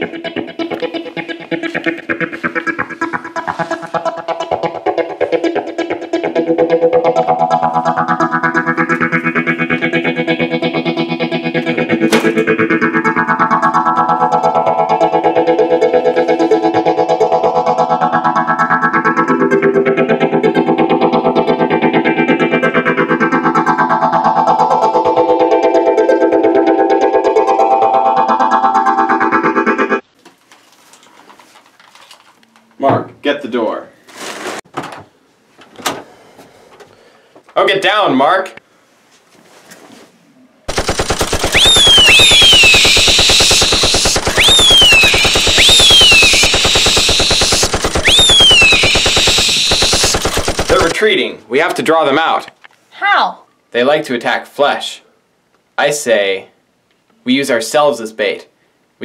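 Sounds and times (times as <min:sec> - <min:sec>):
guitar music with sweeping effect: 0:00.0 - 0:30.0, 0:41.2 - 0:51.0.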